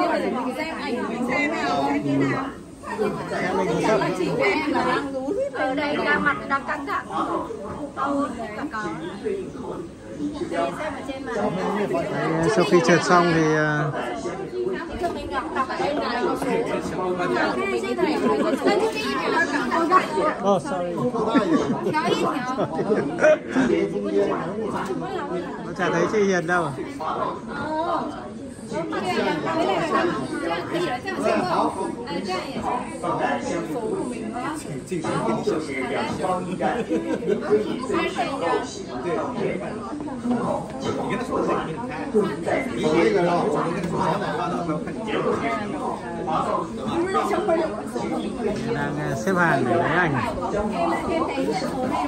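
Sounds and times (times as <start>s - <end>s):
overlapping chatter of voices: 0.0s - 52.0s
people talking over each other: 0.0s - 52.0s.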